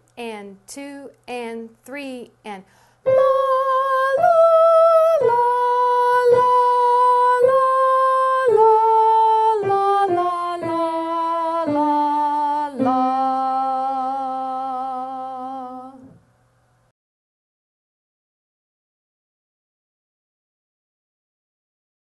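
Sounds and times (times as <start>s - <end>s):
woman singing a melody: 0.2s - 16.2s.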